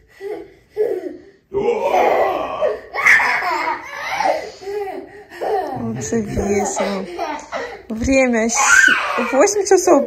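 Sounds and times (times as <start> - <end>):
small child laughing loudly: 2.9 - 5.8.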